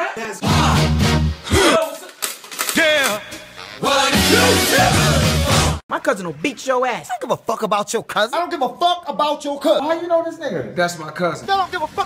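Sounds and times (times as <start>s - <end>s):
man's wavering vocal cry: 4.2s - 5.0s.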